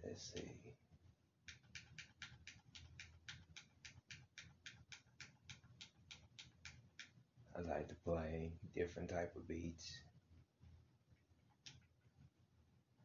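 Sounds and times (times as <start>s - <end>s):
faint hi-hat ticking: 1.4s - 7.8s.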